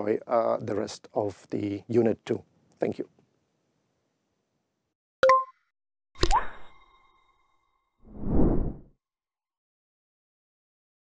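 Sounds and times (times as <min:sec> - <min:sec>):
whoosh: 0:08.1 - 0:08.9.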